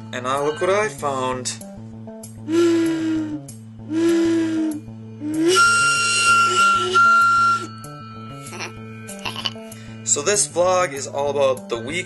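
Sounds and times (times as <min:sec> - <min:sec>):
toy whistle blowing: 0:02.5 - 0:07.8.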